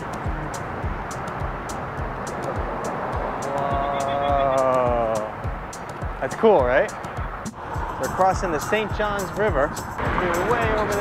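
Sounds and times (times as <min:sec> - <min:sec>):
wind noise: 0:06.9 - 0:11.0.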